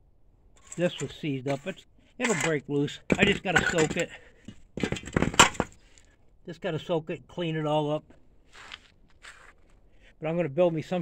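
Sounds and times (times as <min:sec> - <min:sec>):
rusty metal parts rattling: 0:00.6 - 0:05.8.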